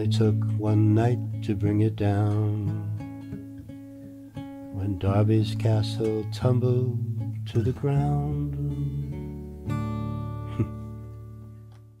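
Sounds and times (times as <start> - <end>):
acoustic guitar chord ringing: 0.0 - 11.7.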